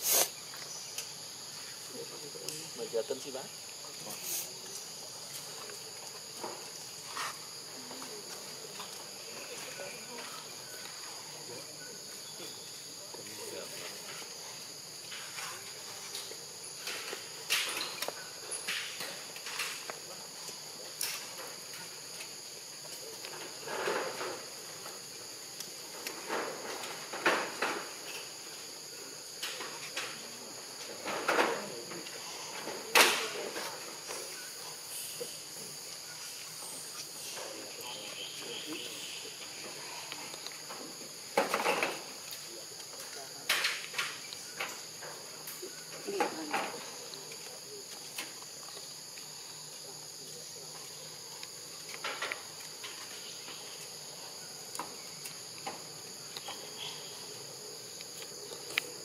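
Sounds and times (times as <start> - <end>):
high-pitched insect chorus: 0.0 - 59.0.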